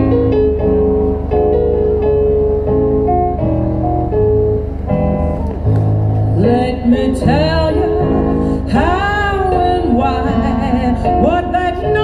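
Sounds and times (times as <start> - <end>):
live blues instrumental notes: 0.0 - 12.0.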